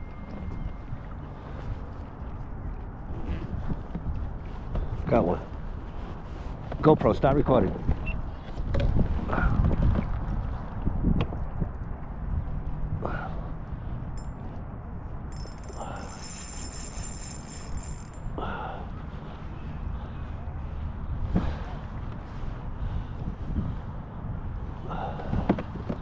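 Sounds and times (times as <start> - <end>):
wind noise on microphone: 0.0 - 6.8, 7.7 - 15.4, 19.1 - 26.0.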